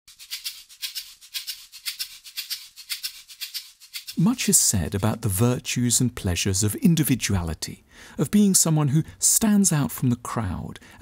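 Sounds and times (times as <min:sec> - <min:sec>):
shaker-like percussion music: 0:00.1 - 0:04.5.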